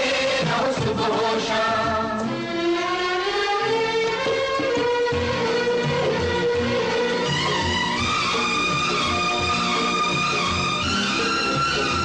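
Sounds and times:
voices singing held notes: 0.0s - 2.4s
instrumental backing: 0.0s - 12.0s.

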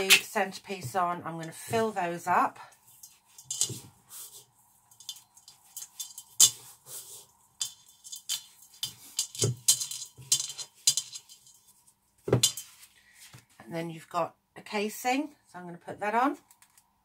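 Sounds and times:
scraping in a metal mixing bowl: 2.8s - 11.7s.

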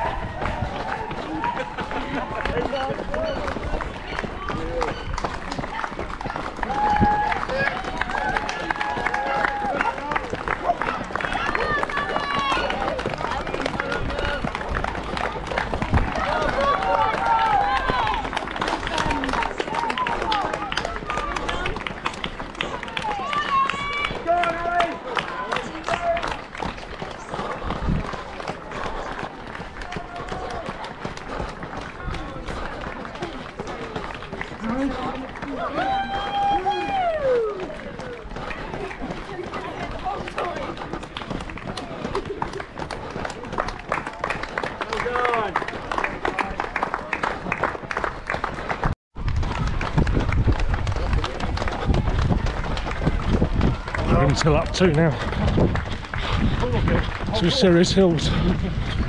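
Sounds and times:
running footsteps on tarmac: 0.0s - 59.0s
spectators calling and cheering: 0.0s - 59.0s.

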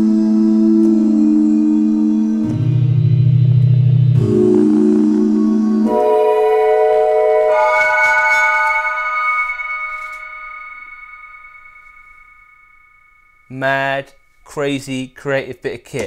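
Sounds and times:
synth chords of sampled voice: 0.0s - 11.7s.

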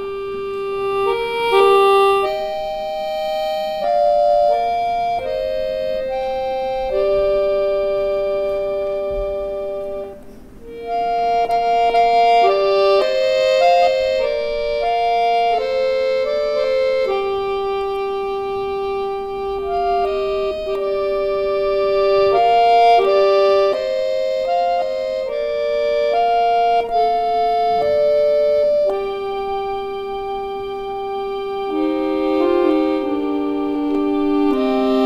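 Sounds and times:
button accordion playing folk song: 0.0s - 35.0s.

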